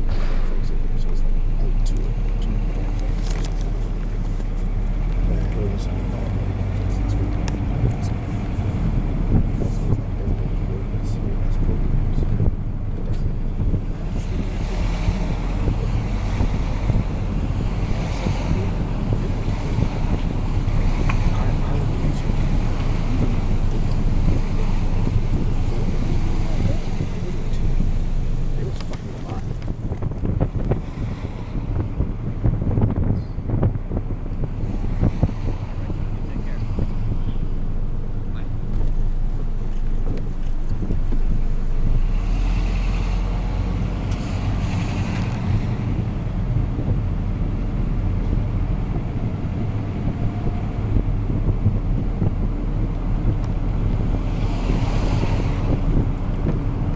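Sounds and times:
passing road traffic: 0:00.0 - 0:56.9
wind buffeting microphone: 0:00.0 - 0:56.9.

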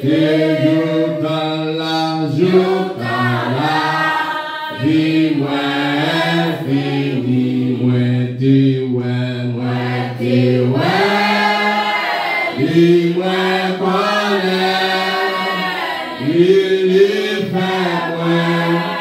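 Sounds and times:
man singing into a microphone: 0:00.0 - 0:04.0, 0:04.7 - 0:11.4, 0:12.6 - 0:15.4, 0:16.2 - 0:19.0
congregation singing a hymn: 0:00.0 - 0:19.0.

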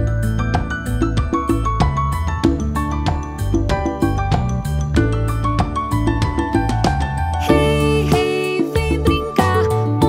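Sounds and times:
upbeat children's song music: 0:00.0 - 0:10.0.

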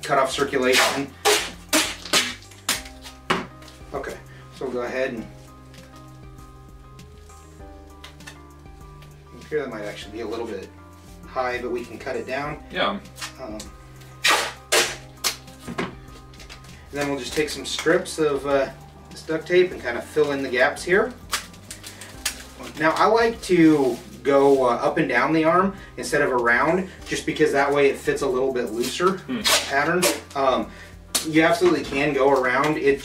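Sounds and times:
duct tape ripping off roll: 0:00.4 - 0:03.6, 0:13.1 - 0:18.0, 0:21.2 - 0:24.6, 0:28.7 - 0:30.5.

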